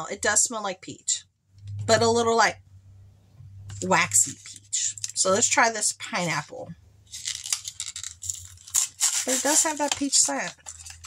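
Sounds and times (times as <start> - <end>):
plastic packaging crinkling: 7.1 - 11.0.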